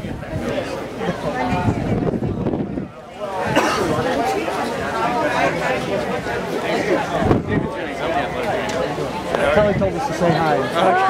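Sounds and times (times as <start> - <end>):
people chatting: 0.0 - 11.0.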